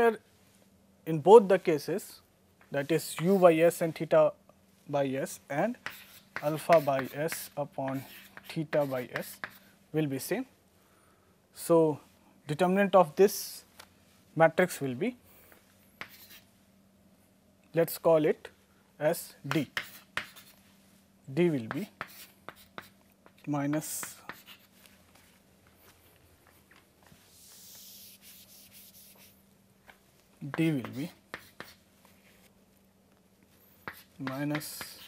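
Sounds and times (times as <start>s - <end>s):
chalk tapping on chalkboard: 5.7s - 9.6s, 16.0s - 16.4s, 19.5s - 20.6s, 21.6s - 24.7s, 27.3s - 29.4s, 30.5s - 31.8s, 33.8s - 35.0s
chalk scraping on chalkboard: 5.7s - 9.7s, 16.0s - 16.5s, 19.5s - 20.6s, 21.6s - 23.0s, 23.8s - 24.9s, 27.2s - 29.4s, 30.5s - 31.8s, 33.7s - 35.0s.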